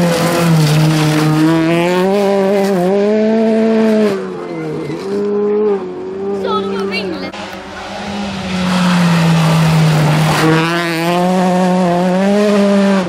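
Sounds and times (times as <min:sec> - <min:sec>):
rally car engine working hard: 0:00.0 - 0:13.0.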